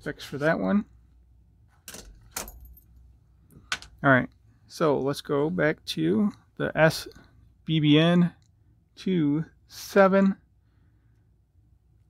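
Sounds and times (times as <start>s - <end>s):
objects clicking on wooden table: 3.6s - 4.0s.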